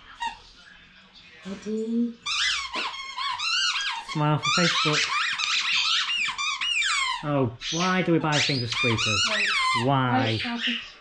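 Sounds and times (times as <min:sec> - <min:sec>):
squeaky toy squeaking: 0:02.2 - 0:10.8.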